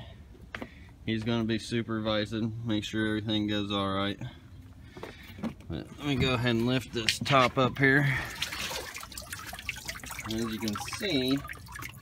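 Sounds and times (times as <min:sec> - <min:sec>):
water dripping and trickling: 0:06.1 - 0:12.0.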